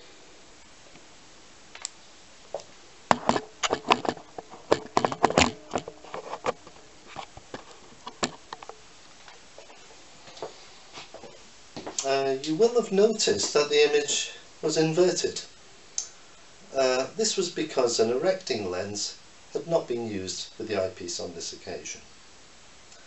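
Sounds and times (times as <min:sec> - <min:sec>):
camera clicks and knocks on tripod: 0:03.1 - 0:08.7.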